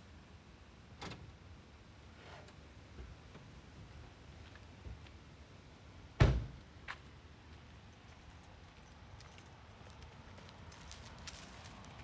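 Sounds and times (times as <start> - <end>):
faint footsteps: 8.6 - 12.0.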